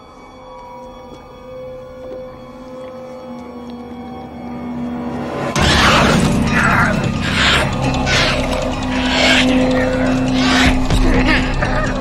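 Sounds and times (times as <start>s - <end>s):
horror music stinger: 4.7s - 12.0s
harsh rasping shrieks: 5.6s - 12.0s.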